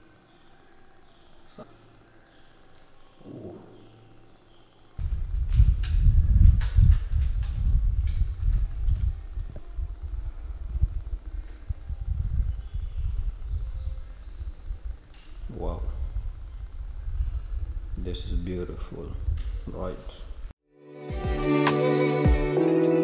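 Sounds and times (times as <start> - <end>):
low rumble on camera microphone: 5.0 - 20.5.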